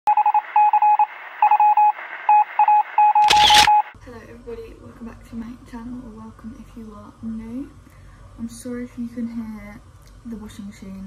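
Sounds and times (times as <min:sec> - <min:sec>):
electronic beeping: 0:00.1 - 0:04.0.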